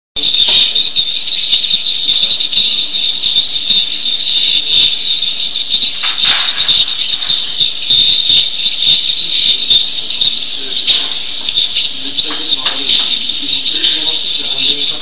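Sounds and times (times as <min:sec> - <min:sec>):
crackling clicks: 0:00.2 - 0:15.0
high-pitched whine: 0:00.2 - 0:15.0.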